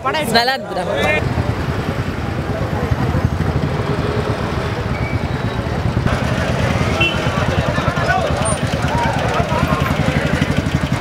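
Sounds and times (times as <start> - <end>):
crowd voices: 0.0 - 11.0
motor vehicles running: 0.0 - 11.0.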